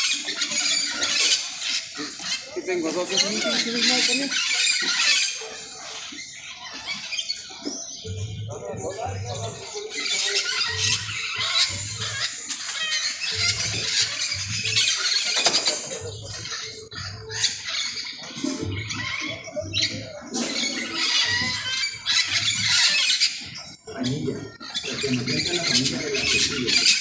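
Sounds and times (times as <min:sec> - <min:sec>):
parakeets screeching and squawking: 0:00.0 - 0:27.0.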